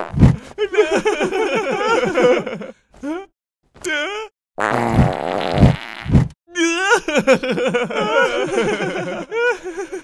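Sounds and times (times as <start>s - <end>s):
cartoon fart sound effect: 4.6s - 6.4s.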